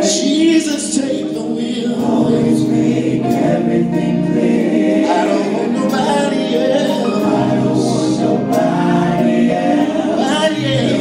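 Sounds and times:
vocal group singing through speakers: 0:00.0 - 0:11.0.

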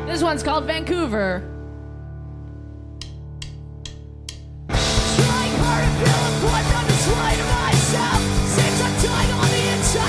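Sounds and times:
drumstick clicks: 0:03.0 - 0:04.6
punk band playing: 0:04.7 - 0:10.0.

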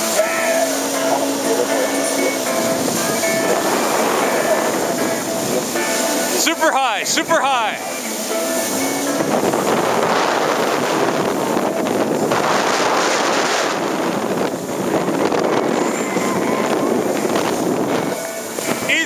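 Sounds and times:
watercraft engine and jet: 0:00.0 - 0:19.0
wind buffeting microphone: 0:00.0 - 0:19.0.

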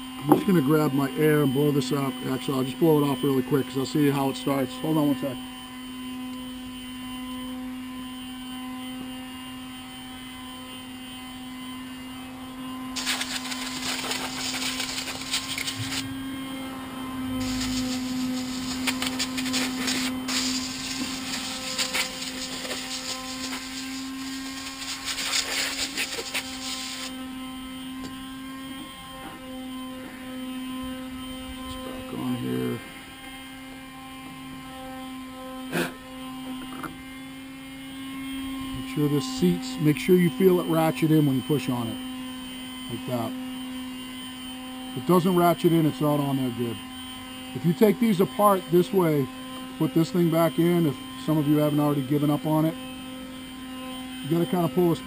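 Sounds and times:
steady background buzz: 0:00.0 - 0:55.0
compressed air hissing from blowgun: 0:13.0 - 0:16.1, 0:17.4 - 0:27.1.

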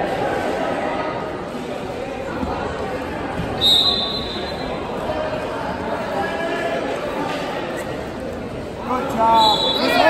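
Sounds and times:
echoing background chatter: 0:00.0 - 0:10.0
referee's whistle blast: 0:03.6 - 0:04.6.

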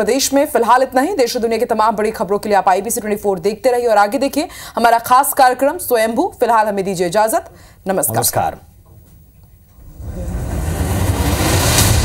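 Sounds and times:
rising whoosh with deep rumble: 0:09.8 - 0:12.0.

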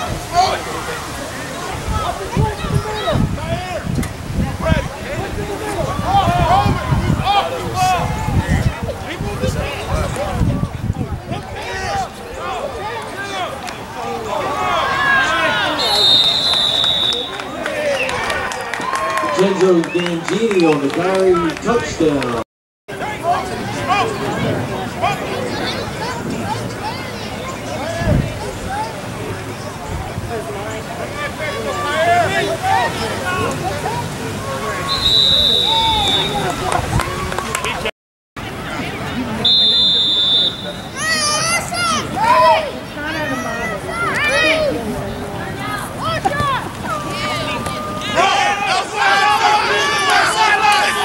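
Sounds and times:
spectators yelling and cheering: 0:00.0 - 0:51.0
whistle blown: 0:15.8 - 0:18.2, 0:34.8 - 0:36.6, 0:39.4 - 0:41.2.

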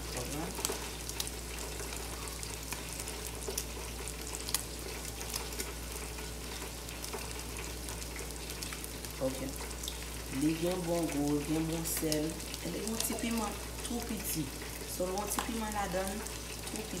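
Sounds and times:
food sizzling in a pan: 0:00.0 - 0:17.0.

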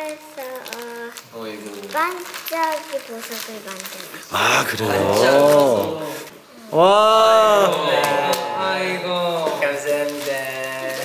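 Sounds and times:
girl speaking in high voice: 0:00.0 - 0:01.2, 0:01.8 - 0:04.3.

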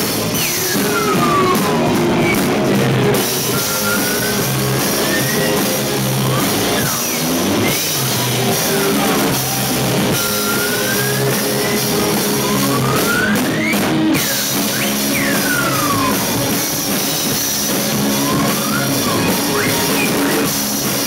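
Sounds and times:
gliding guitar tones: 0:00.0 - 0:21.0
live rock band playing: 0:00.0 - 0:21.0.

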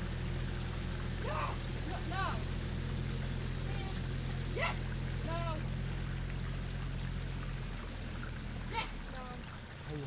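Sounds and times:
motor running steadily: 0:00.0 - 0:10.0
person shouting: 0:01.2 - 0:01.6, 0:04.6 - 0:05.6.

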